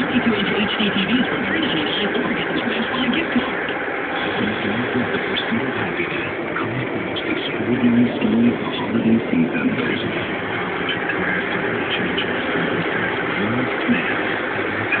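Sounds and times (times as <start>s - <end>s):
faint voice: 0.0s - 15.0s
road and engine noise inside car: 0.0s - 15.0s.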